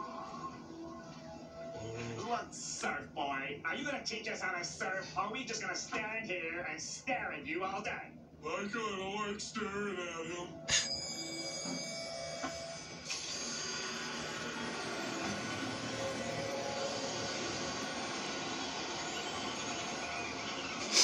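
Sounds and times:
music from television speaker: 0:00.0 - 0:02.8, 0:09.0 - 0:21.0.

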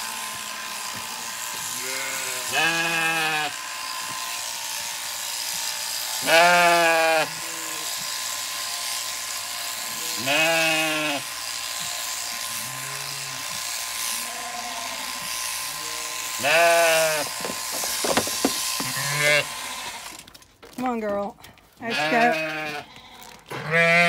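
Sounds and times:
electric sheep shears buzzing: 0:00.0 - 0:20.4, 0:21.9 - 0:24.0
sheep bleating: 0:01.3 - 0:03.6, 0:06.2 - 0:08.0, 0:09.8 - 0:11.4, 0:12.4 - 0:20.1, 0:21.8 - 0:24.0.

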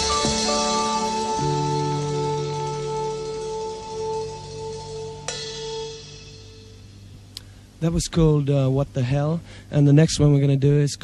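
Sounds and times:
sharp drum hit: 0:00.0 - 0:07.3
rock band final chord ringing: 0:00.0 - 0:07.7.

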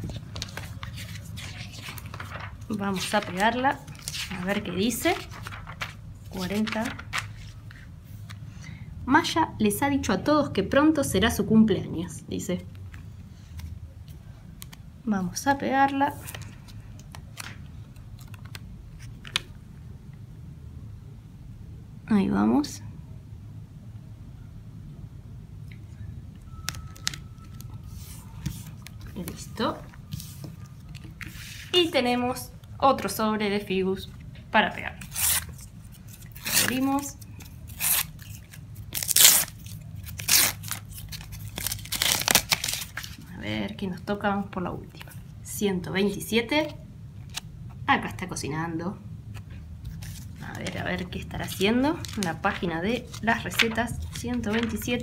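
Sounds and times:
paper sticker crackling: 0:00.1 - 0:07.8, 0:49.9 - 0:55.0.

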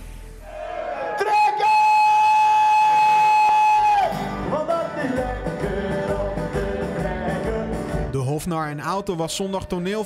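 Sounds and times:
amplified acoustic guitar: 0:03.9 - 0:10.0
man singing: 0:04.4 - 0:10.0.

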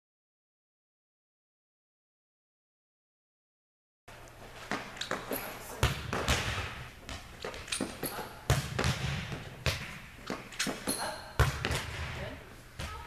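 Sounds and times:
ball bouncing off floor: 0:04.7 - 0:13.0
volleyball being struck: 0:05.8 - 0:07.3, 0:07.9 - 0:12.2.

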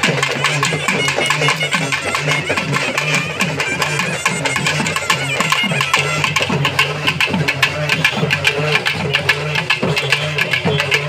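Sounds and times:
barrel drums beaten fast: 0:00.0 - 0:11.0.

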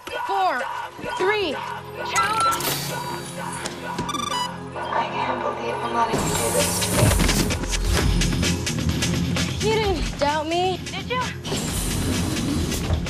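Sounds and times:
tense electronic drama score: 0:00.0 - 0:13.0
gliding electronic chirps: 0:04.0 - 0:06.8
quick electronic beeps: 0:04.1 - 0:04.6.

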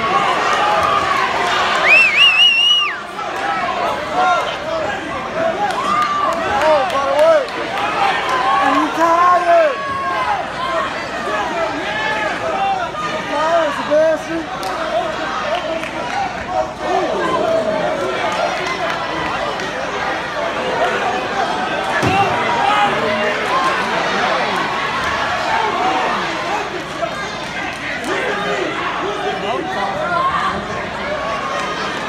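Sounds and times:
spectators shouting: 0:00.0 - 0:32.0.

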